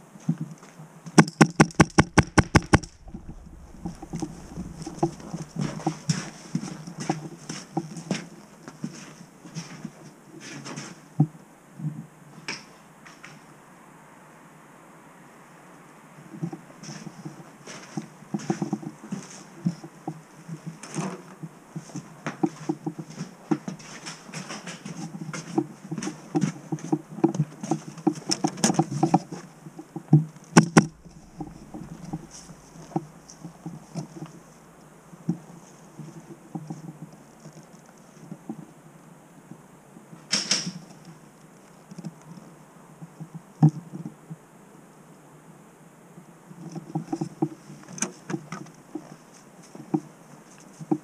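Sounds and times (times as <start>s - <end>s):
faint outdoor background: 0.0s - 51.0s
light clicks and knocks: 0.3s - 8.8s, 16.4s - 38.7s
raindrops tapping on camera: 1.2s - 7.4s, 26.3s - 34.5s.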